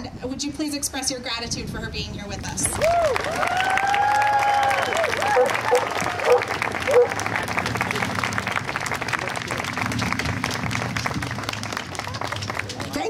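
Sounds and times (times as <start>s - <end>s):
crowd applauding: 2.6s - 13.0s.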